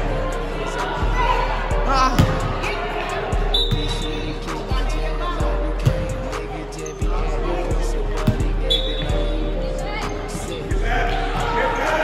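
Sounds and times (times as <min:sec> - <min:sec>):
shoe squeak: 0:03.5 - 0:04.2, 0:08.7 - 0:09.4.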